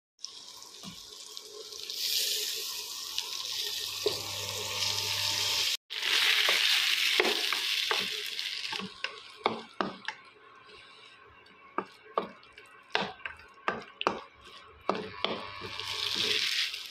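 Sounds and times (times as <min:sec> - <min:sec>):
food sizzling in a pan: 0:00.2 - 0:16.9
spatula scraping and knocking pan: 0:07.2 - 0:10.2, 0:11.7 - 0:16.4.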